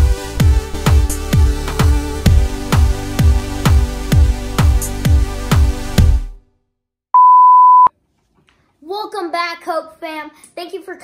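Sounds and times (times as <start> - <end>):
steady test tone beep: 7.2 - 7.9.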